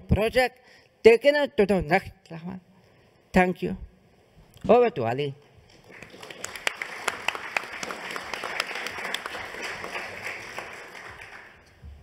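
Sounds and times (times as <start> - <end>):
audience applauding: 5.8 - 11.8.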